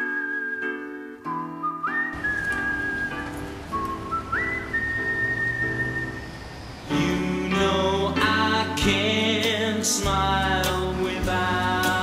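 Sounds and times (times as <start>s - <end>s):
soft instrumental music: 0.0s - 6.0s, 6.9s - 12.0s
whistled melody: 0.0s - 7.8s.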